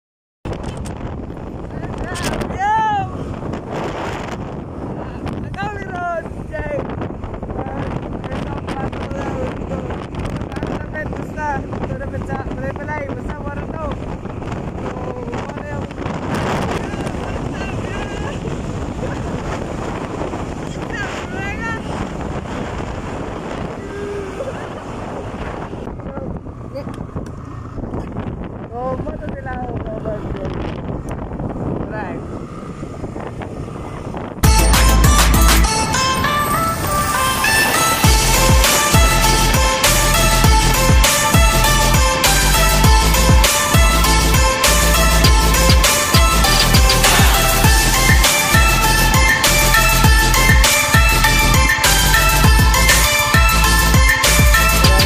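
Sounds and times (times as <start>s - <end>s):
wind buffeting microphone: 0.4s - 55.0s
loud music: 34.4s - 55.0s.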